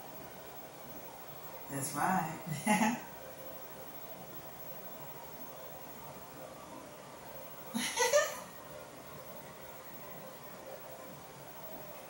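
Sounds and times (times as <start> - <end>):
faint room noise: 0.0 - 12.0
woman laughing: 2.5 - 3.1, 7.8 - 8.5.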